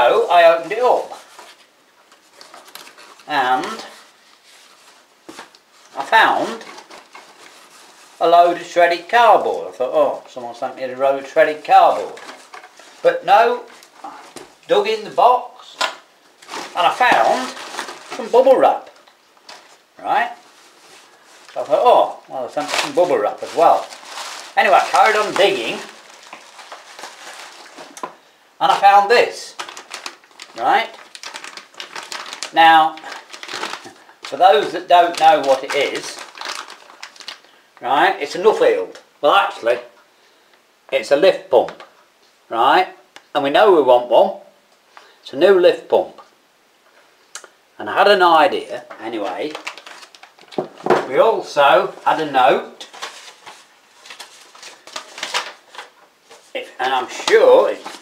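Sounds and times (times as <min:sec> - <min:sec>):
cardboard packing rustling: 0:00.0 - 0:37.6, 0:48.9 - 0:58.0.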